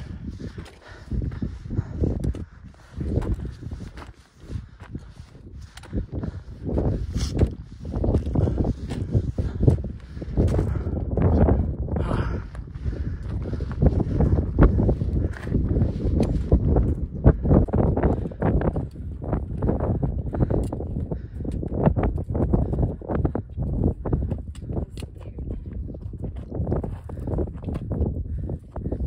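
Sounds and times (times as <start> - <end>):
footsteps on loose rock: 0.0 - 11.0
wind rumble on microphone: 0.0 - 29.0.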